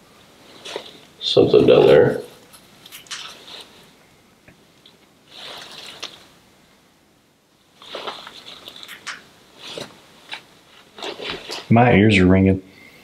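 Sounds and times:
clothing and gear rustling: 0.2 - 4.0, 4.8 - 6.4, 7.6 - 11.8.

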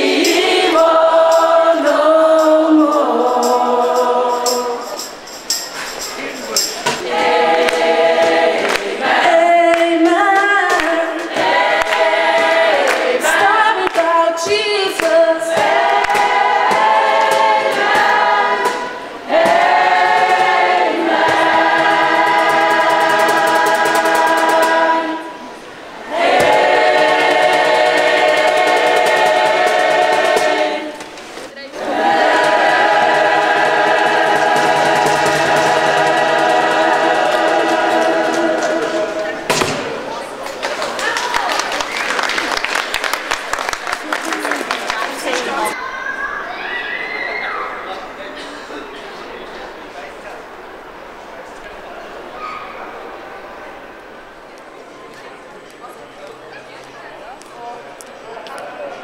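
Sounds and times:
choir singing a cappella: 0.0 - 6.0, 6.8 - 40.0.

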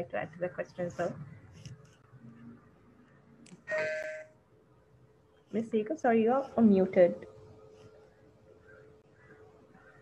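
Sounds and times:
electronic chime ding: 3.7 - 4.3.

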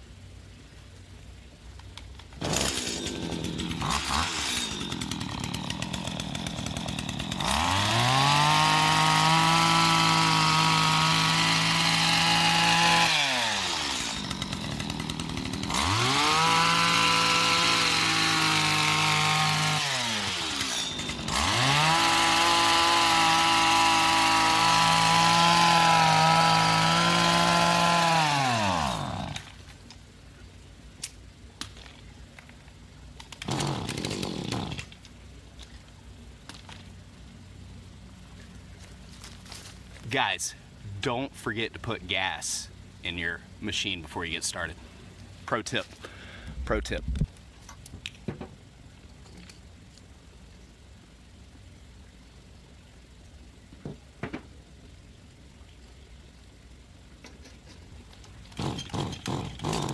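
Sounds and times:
hedge trimmer engine revving: 2.4 - 29.5, 33.4 - 34.9, 58.5 - 59.9.

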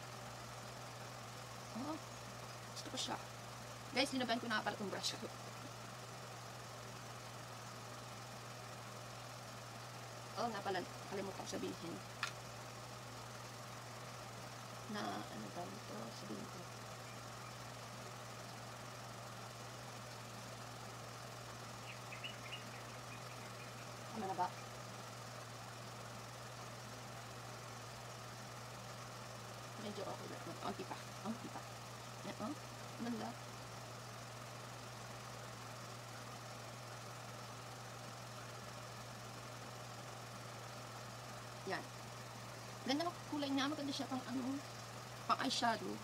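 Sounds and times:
low hum: 0.0 - 46.0.

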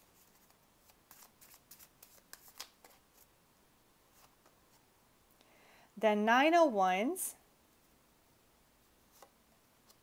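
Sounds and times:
cards being shuffled: 0.2 - 3.3.

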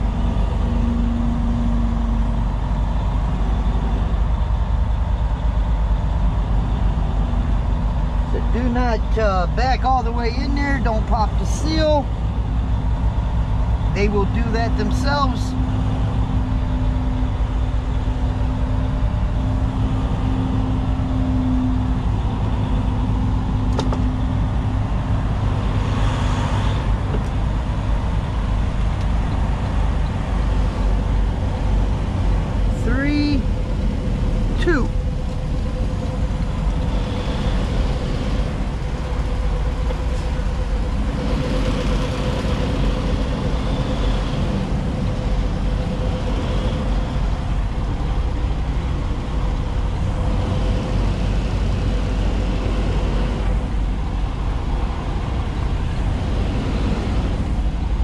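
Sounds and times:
diesel truck engine rumbling: 0.0 - 58.0.

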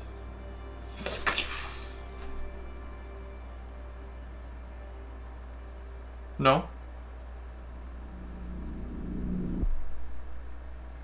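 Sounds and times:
low droning music: 0.0 - 11.0
low electrical hum: 0.0 - 11.0.

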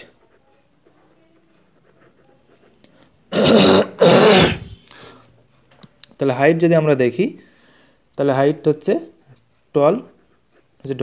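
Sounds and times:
man clearing his throat: 3.3 - 4.8.

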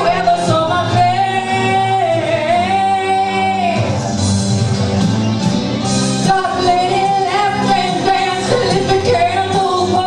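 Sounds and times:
woman singing: 0.0 - 4.0, 6.2 - 10.0
musical accompaniment: 0.0 - 10.0.

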